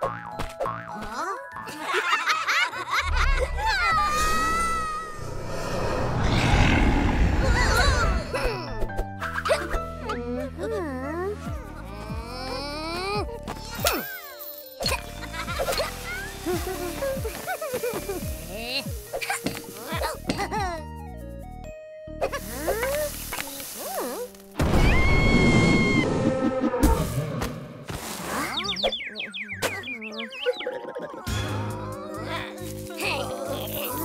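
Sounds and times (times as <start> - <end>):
low background music: 8.2 - 24.9.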